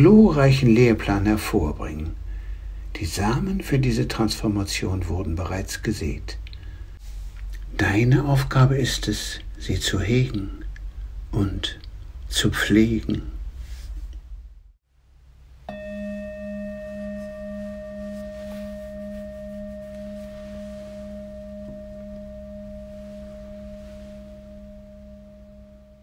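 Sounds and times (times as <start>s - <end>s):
faint low hum: 0.0s - 26.0s
singing bowl ringing: 15.7s - 26.0s.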